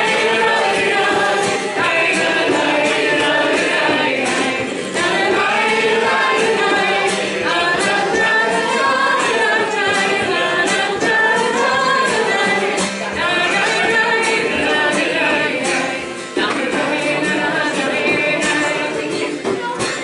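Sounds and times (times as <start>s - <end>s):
frame drum beat: 0.0s - 20.0s
many voices singing along: 0.0s - 20.0s
woman singing folk song: 0.1s - 20.0s.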